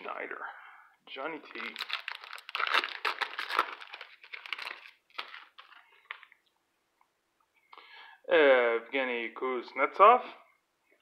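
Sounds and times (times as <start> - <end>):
foil wrapper tearing and crinkling: 1.5 - 6.3.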